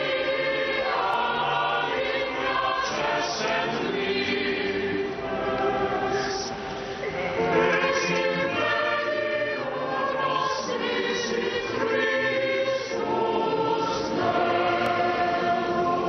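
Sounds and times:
choir singing a chant: 0:00.0 - 0:16.0.

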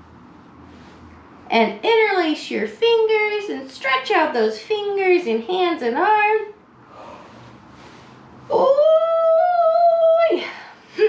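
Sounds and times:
soft breath: 0:00.4 - 0:01.4, 0:06.7 - 0:08.5.

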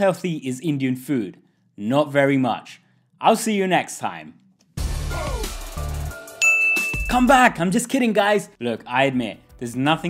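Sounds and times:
outro music with heavy bass: 0:04.8 - 0:06.4
bright bell-like ding: 0:06.4 - 0:07.3.

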